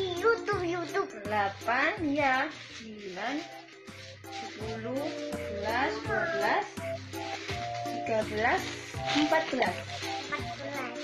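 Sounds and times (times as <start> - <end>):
background music with repeating melody: 0.0 - 11.0
plastic bags crinkling: 0.0 - 11.0.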